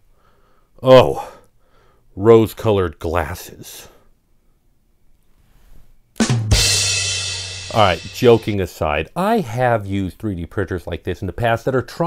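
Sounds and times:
drum hits: 0:06.2 - 0:08.6
cymbal crash ringing: 0:06.3 - 0:08.6.

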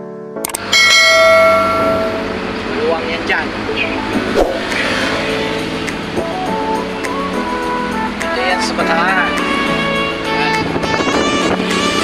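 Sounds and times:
music: 0:00.0 - 0:12.0
notification bell chime: 0:00.8 - 0:02.3.

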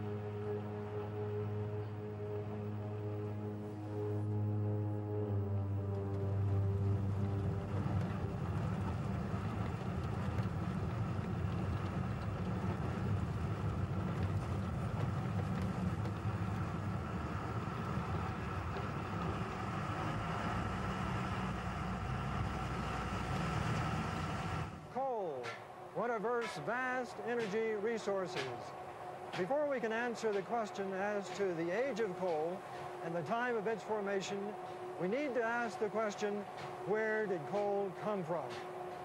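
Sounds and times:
vehicle rumbling in tunnel: 0:00.0 - 0:24.8.

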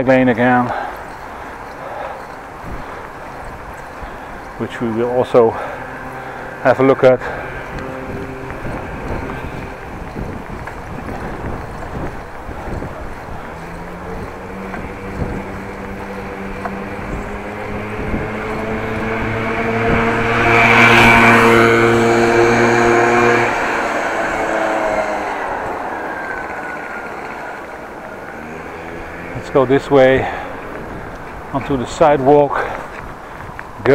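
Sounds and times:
vehicle engine passing: 0:00.0 - 0:33.9
wind and bicycle riding noise: 0:00.0 - 0:33.9.

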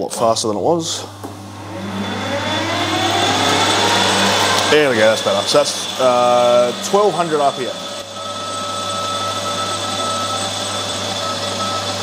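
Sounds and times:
lathe motor whining up: 0:01.1 - 0:12.0.

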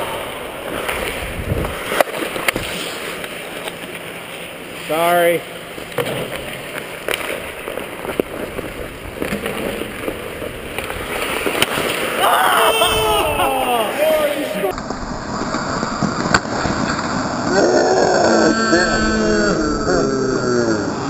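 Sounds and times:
skates scraping on ice: 0:00.0 - 0:04.8, 0:05.8 - 0:12.7
stick and puck clacks: 0:00.6 - 0:04.0, 0:05.9 - 0:12.2, 0:14.7 - 0:17.1
players shouting: 0:12.2 - 0:14.8.

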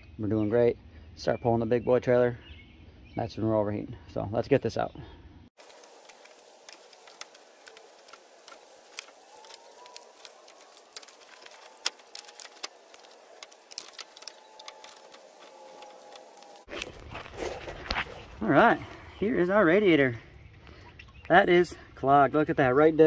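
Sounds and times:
faint steady hiss: 0:05.6 - 0:16.7.

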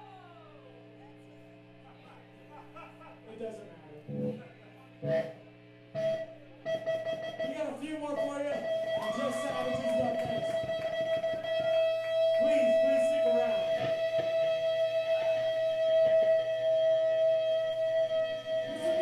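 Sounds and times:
electric guitar ringing note: 0:04.1 - 0:04.4, 0:08.2 - 0:19.0.

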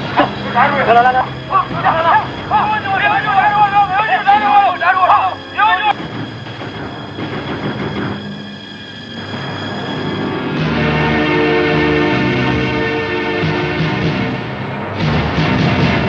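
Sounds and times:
men shouting and yelling: 0:00.0 - 0:06.0.

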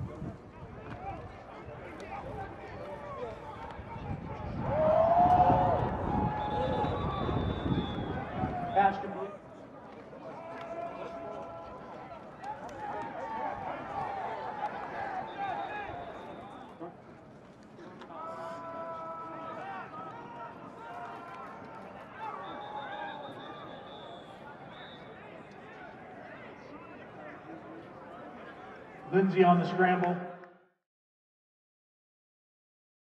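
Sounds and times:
players and coaches shouting: 0:00.7 - 0:07.4, 0:08.0 - 0:09.4, 0:10.2 - 0:16.7, 0:18.1 - 0:27.4
loud shout: 0:03.0 - 0:09.0, 0:10.3 - 0:16.5, 0:18.1 - 0:23.8.

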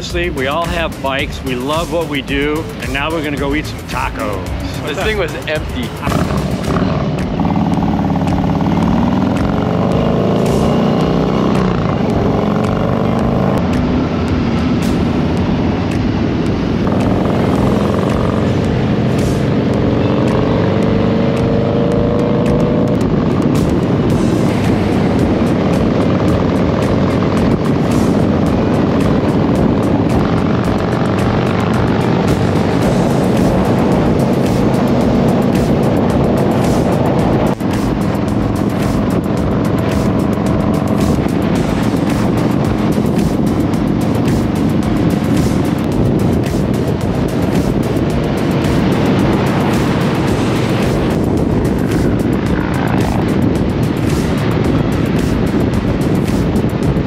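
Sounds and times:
motorcycle engines revving: 0:00.0 - 0:57.0
road and wind noise: 0:00.0 - 0:57.0.

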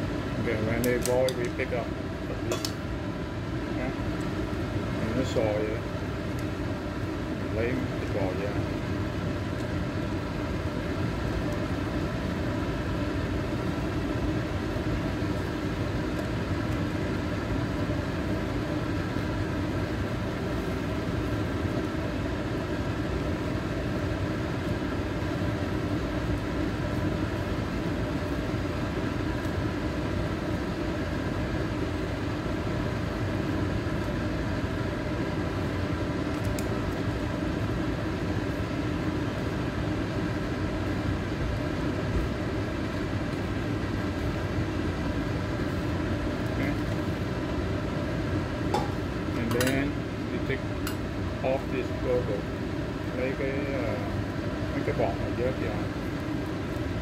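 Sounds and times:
broth boiling hard: 0:00.0 - 0:57.0
gas burner hum: 0:00.0 - 0:57.0
utensils clicking against wok: 0:00.8 - 0:01.6, 0:02.5 - 0:02.8.

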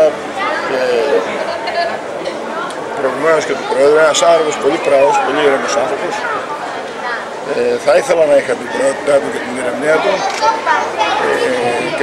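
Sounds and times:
background voices chattering: 0:00.0 - 0:12.0.

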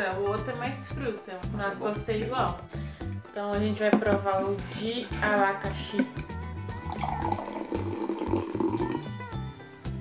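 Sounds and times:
background music with steady beat: 0:00.0 - 0:10.0
fizzy soda pouring into glass: 0:06.8 - 0:09.1.

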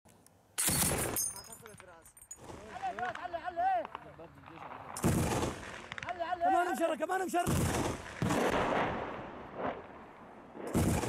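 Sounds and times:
machine gun burst: 0:10.7 - 0:11.0.

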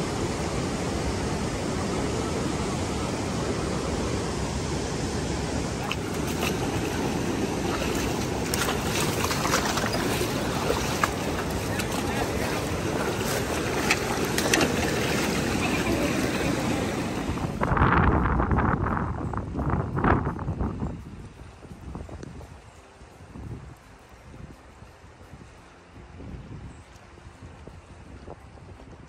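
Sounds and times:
river rapids rushing: 0:00.0 - 0:17.8
wind on microphone: 0:00.0 - 0:29.0
fish splashing in net: 0:05.8 - 0:17.2.

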